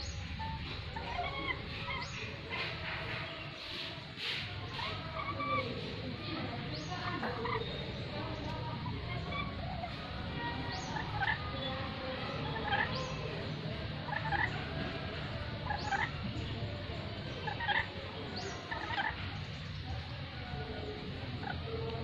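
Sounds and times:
parrot calling: 0.3s - 2.8s.

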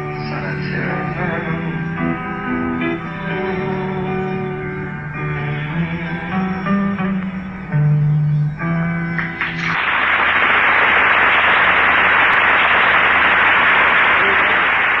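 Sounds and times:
acoustic guitar: 0.0s - 9.8s
audience applause: 9.2s - 15.0s.

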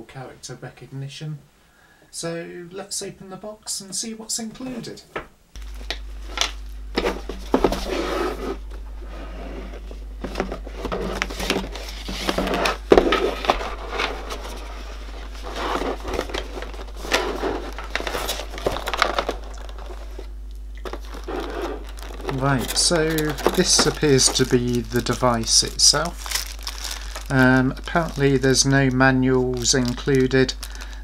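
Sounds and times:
low hum: 5.4s - 31.0s
cardboard box rustling: 7.0s - 28.2s.

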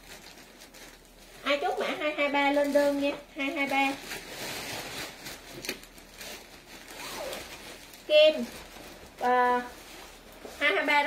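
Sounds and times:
fabric rustling: 0.0s - 11.0s.

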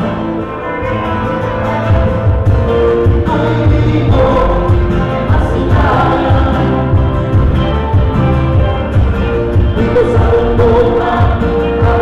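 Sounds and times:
drum kit: 0.0s - 12.0s
electric bass: 0.0s - 12.0s
strummed acoustic guitars: 0.0s - 12.0s
woman singing lead: 3.0s - 8.0s, 9.6s - 12.0s.

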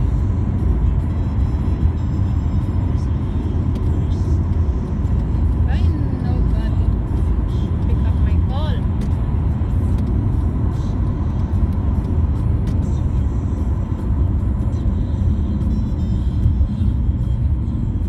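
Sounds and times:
car engine and tyres rumbling: 0.0s - 18.0s.

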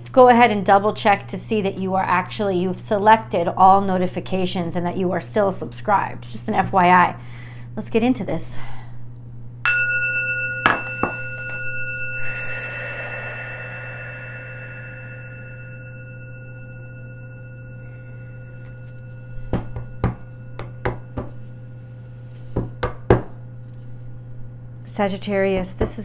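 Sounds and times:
singing bowl ringing: 9.7s - 24.7s.

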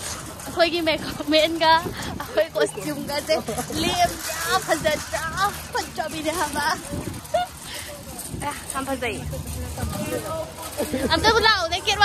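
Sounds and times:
people talking: 0.4s - 12.0s.

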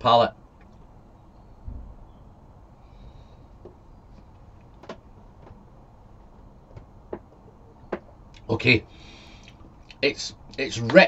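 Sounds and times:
faint clicks: 9.4s - 10.6s.

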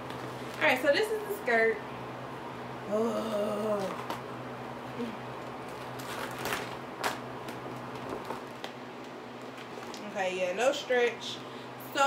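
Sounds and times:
vinyl crinkling: 5.5s - 10.2s.

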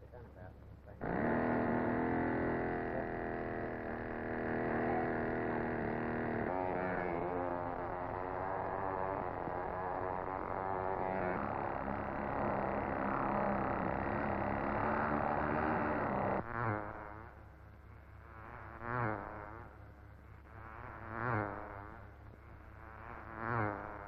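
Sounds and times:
model car engine buzzing: 0.0s - 24.0s.

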